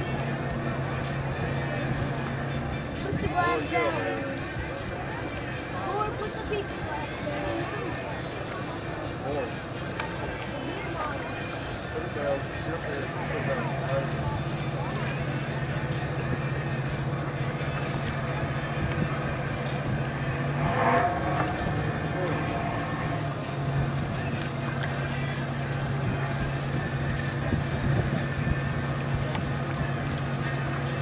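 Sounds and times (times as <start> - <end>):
distant voices: 0.0 - 31.0
low engine drone: 0.0 - 31.0
music: 0.0 - 31.0.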